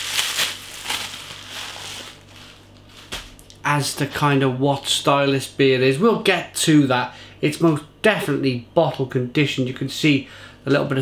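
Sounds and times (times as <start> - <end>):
paper wrapping crinkling: 0.0 - 3.2.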